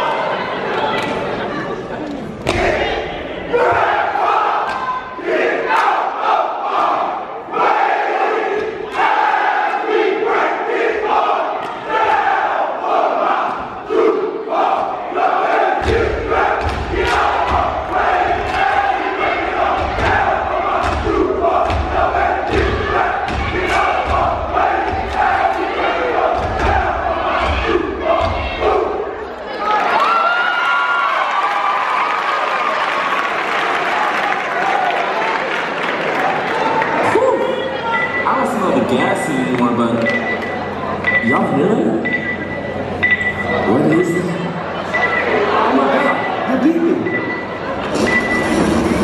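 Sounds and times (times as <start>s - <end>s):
rhythmic stomping and clapping: 5.6s - 7.2s, 8.4s - 9.4s, 15.6s - 28.8s
audience cheering: 15.5s - 37.8s.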